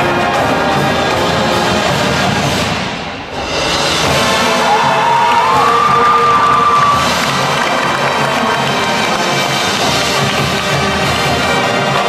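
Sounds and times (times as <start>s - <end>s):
marching band playing: 0.0s - 12.0s
crowd cheering: 4.0s - 12.0s.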